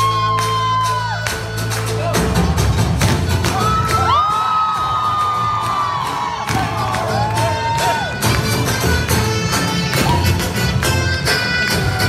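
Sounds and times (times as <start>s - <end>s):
crowd cheering and whooping: 0.0s - 8.7s, 9.9s - 10.6s.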